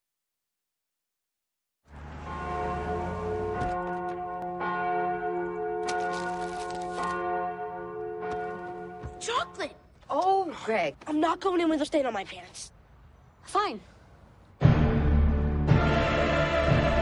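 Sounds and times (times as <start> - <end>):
church bells ringing: 1.9 - 9.8.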